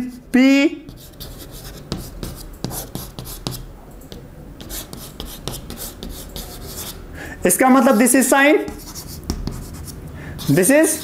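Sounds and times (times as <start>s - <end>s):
chalk scratching on chalkboard: 0.9s - 7.0s, 7.8s - 11.0s.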